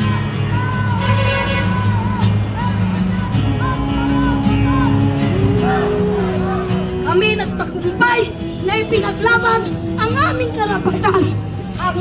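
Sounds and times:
woman speaking loudly: 0:07.0 - 0:12.0.

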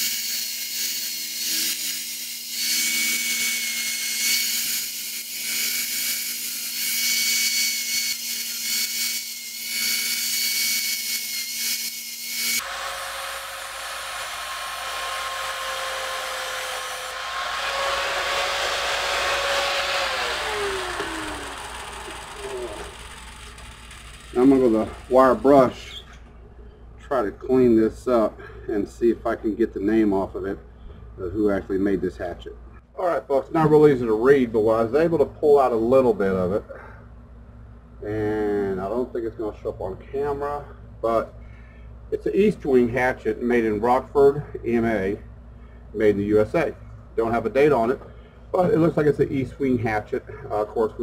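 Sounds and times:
angle grinder grinding metal: 0:00.0 - 0:26.0.

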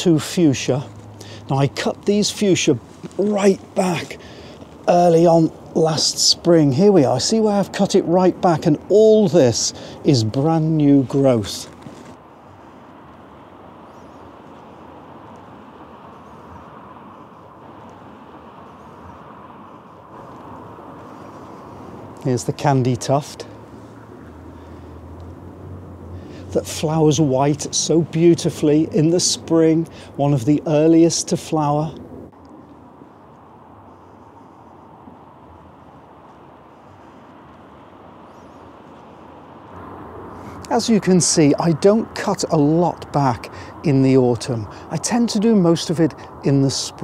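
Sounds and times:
road traffic hum: 0:00.0 - 0:47.0
faint bird chirps: 0:13.8 - 0:14.9, 0:38.2 - 0:39.3.

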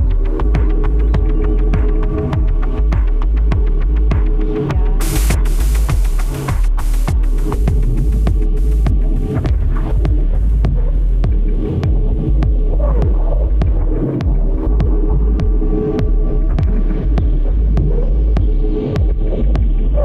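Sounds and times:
deep sub-bass drone: 0:00.0 - 0:20.0
electronic dance music: 0:05.0 - 0:08.9.

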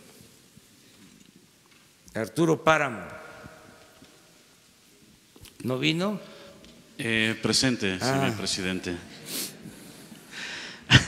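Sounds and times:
soft rustles: 0:00.0 - 0:02.1.

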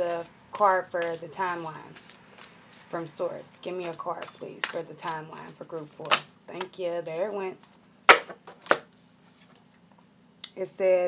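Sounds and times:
cards rustling: 0:00.9 - 0:02.9, 0:03.8 - 0:07.3, 0:08.1 - 0:09.6
cards snapping on a table: 0:06.0 - 0:06.3, 0:08.1 - 0:08.9.

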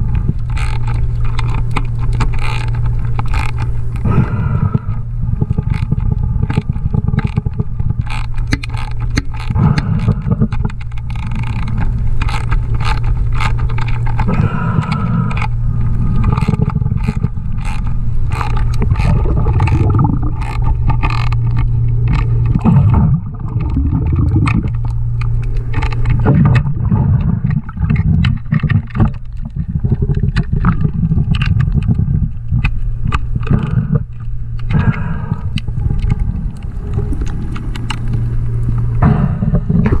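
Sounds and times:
low underwater rumble: 0:00.0 - 0:40.0
hand tool clicking on metal underwater: 0:00.2 - 0:40.0.

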